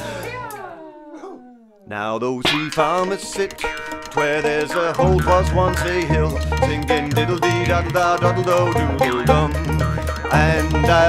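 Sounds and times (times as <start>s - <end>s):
backing band: 0.0s - 0.6s, 2.7s - 11.0s
man singing long note: 4.6s - 11.0s.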